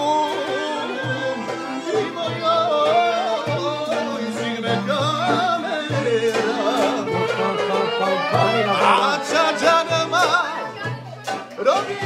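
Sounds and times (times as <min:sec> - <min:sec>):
clarinet melody: 0:00.0 - 0:11.3
accordion accompaniment: 0:00.0 - 0:12.0.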